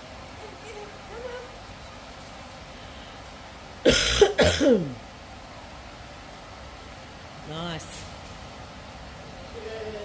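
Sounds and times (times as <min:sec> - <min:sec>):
person coughing: 0:03.8 - 0:05.0.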